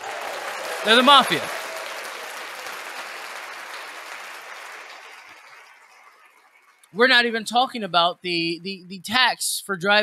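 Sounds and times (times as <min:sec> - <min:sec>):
applause: 0:00.0 - 0:07.0.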